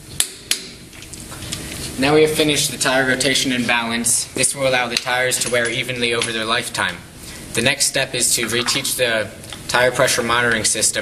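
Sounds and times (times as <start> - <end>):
faint workshop background noise: 0.0 - 11.0.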